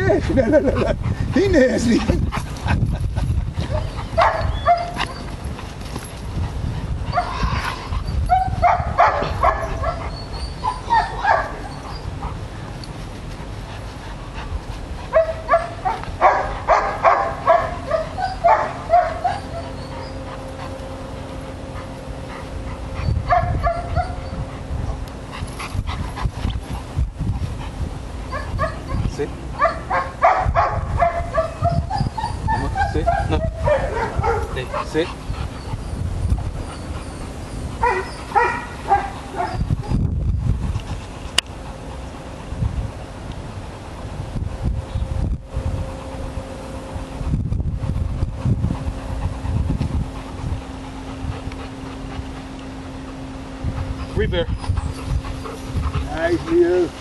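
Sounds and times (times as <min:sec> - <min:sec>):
dog barking: 0:03.7 - 0:05.0, 0:08.3 - 0:10.1, 0:10.7 - 0:11.7, 0:15.1 - 0:19.7, 0:23.3 - 0:24.2, 0:29.6 - 0:31.8, 0:32.6 - 0:35.0, 0:37.8 - 0:39.6.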